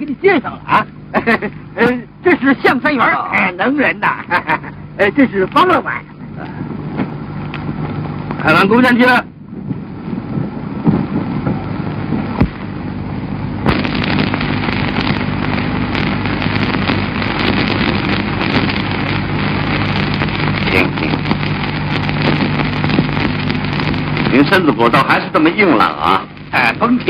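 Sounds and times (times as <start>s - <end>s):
crackle: 0.0s - 27.0s
film soundtrack hiss: 0.0s - 27.0s
low hum: 0.0s - 27.0s.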